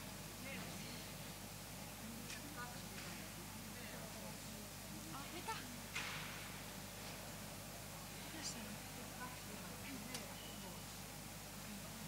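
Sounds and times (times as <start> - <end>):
murmur of indistinct voices: 0.0 - 12.0.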